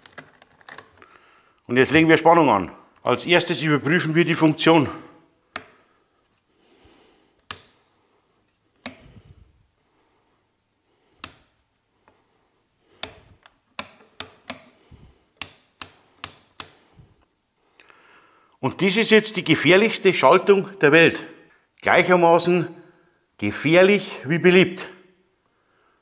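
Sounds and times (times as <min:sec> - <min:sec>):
light switches clicking: 0:05.5 - 0:05.8, 0:07.4 - 0:07.8, 0:08.8 - 0:09.2, 0:11.2 - 0:11.5, 0:13.0 - 0:14.8, 0:15.4 - 0:16.8.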